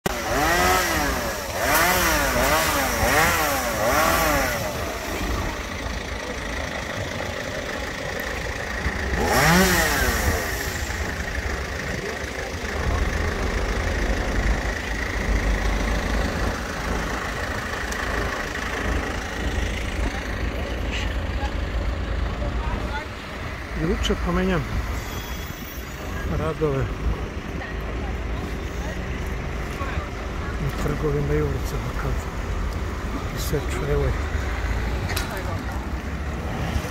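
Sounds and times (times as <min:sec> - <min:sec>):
chainsaw revving: 0:00.1 - 0:20.0, 0:36.2 - 0:36.9
low engine rumble: 0:00.1 - 0:36.9.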